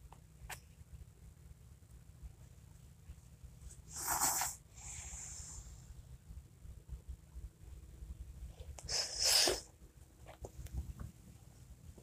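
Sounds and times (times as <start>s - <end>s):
person sneezing: 8.9s - 9.7s.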